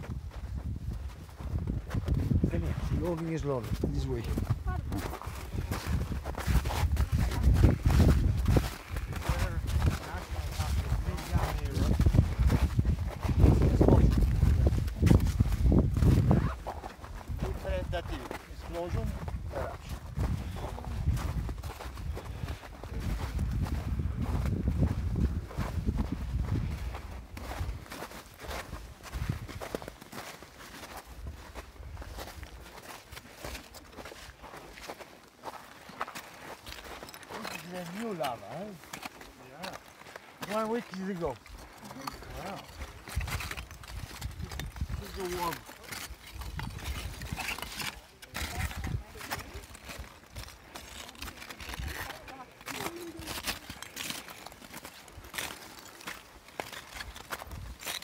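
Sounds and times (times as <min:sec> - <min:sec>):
footsteps crunching on rubble: 0:00.0 - 0:58.0.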